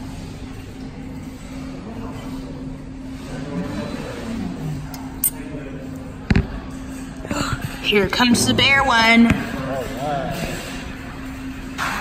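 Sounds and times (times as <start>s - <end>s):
machine hum: 3.0s - 12.0s.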